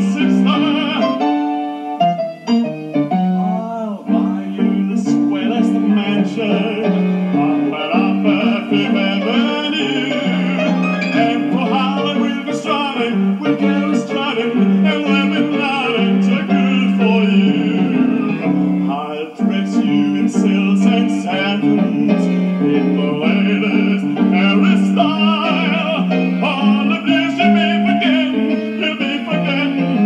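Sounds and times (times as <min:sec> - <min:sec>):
man singing operatically: 0:00.0 - 0:01.8, 0:03.4 - 0:30.0
piano accompaniment: 0:00.0 - 0:30.0.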